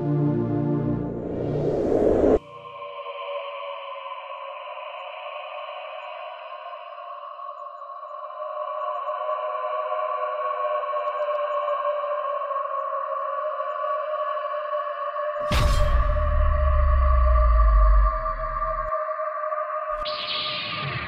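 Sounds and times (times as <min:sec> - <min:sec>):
synthesizer drone: 0:00.0 - 0:02.6, 0:16.2 - 0:18.9.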